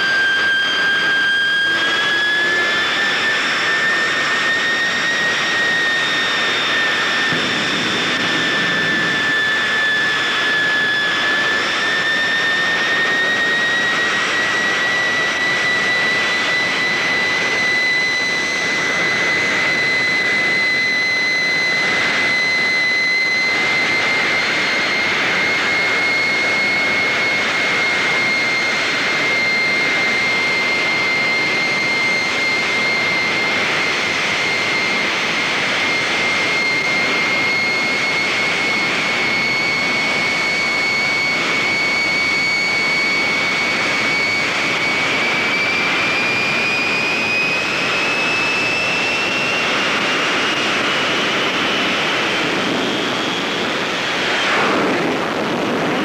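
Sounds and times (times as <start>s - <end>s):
loud turbine whine: 0.0s - 56.0s
exhaust rush: 0.8s - 11.8s, 48.9s - 56.0s.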